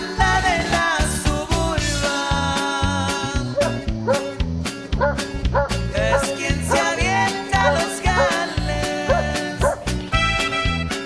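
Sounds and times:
background music with steady beat: 0:00.0 - 0:11.0
dog barking: 0:03.6 - 0:04.4, 0:05.0 - 0:06.9, 0:07.6 - 0:08.4, 0:09.1 - 0:09.9.

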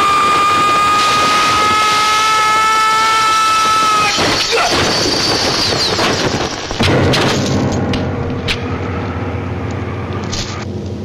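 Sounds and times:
loud shrill tone: 0:00.0 - 0:06.4.

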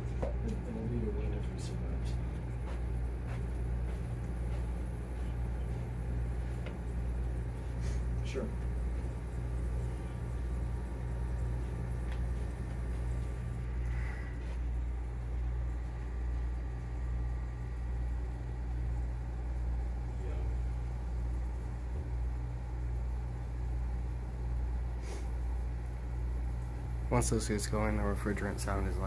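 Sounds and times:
air conditioner compressor hum: 0:00.0 - 0:29.0
air through vent register: 0:00.0 - 0:29.0.

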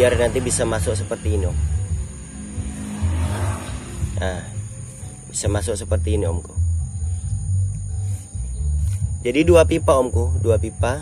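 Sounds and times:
bass-heavy music over loudspeakers: 0:00.0 - 0:11.0
steady high whine: 0:00.0 - 0:11.0.

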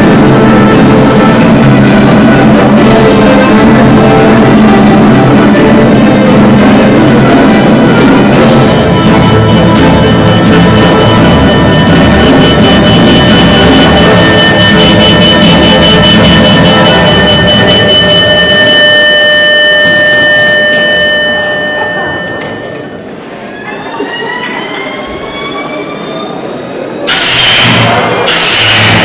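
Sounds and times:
loud noisy blasts: 0:00.0 - 0:18.8, 0:27.1 - 0:29.0
show music over pa: 0:00.0 - 0:21.2
siren sound effect: 0:08.6 - 0:23.0.

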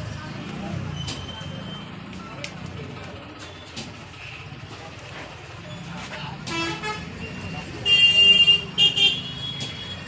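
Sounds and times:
traffic rumble: 0:00.0 - 0:10.0
vehicle horn honk: 0:07.8 - 0:10.0.

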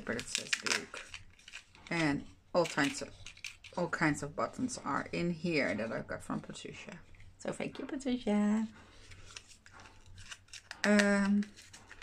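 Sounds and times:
paper booklet rustling: 0:00.0 - 0:07.2, 0:08.8 - 0:12.0.

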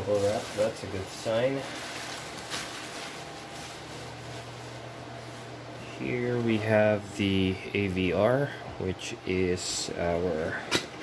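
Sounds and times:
bubble wrap rustling and crinkling: 0:00.0 - 0:08.3.

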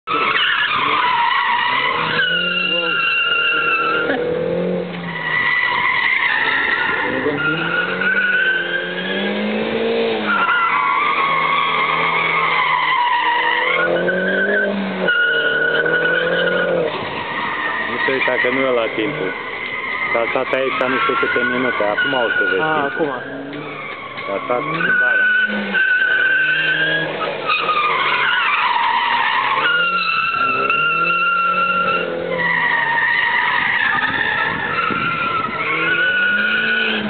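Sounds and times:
car engine revving: 0:00.0 - 0:37.0
tyres squealing: 0:00.1 - 0:37.0.

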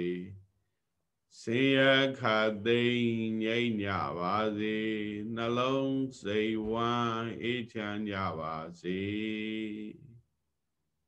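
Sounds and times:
person chanting: 0:00.0 - 0:00.4, 0:01.4 - 0:10.2.

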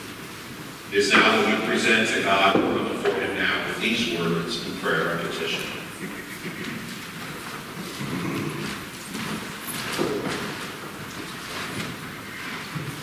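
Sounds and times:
people shuffling in echoing room: 0:00.0 - 0:13.0.

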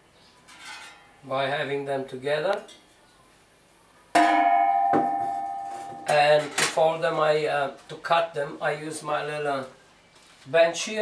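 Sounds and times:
steel sheet ringing like a bell: 0:04.2 - 0:06.1.

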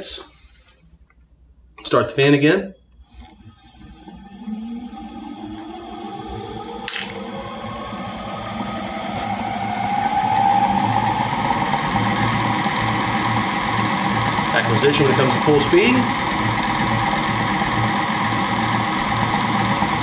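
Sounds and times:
electric motor whine: 0:02.8 - 0:20.0.

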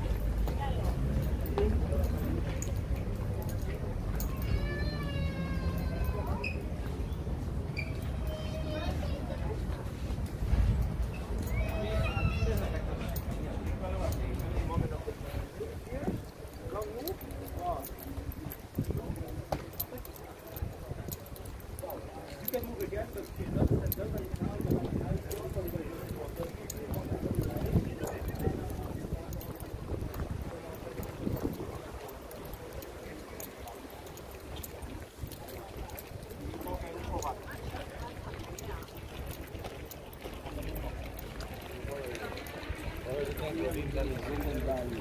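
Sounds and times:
people talking: 0:00.0 - 0:45.0
voices of passers-by: 0:00.0 - 0:45.0
wind buffeting microphone: 0:08.6 - 0:45.0.

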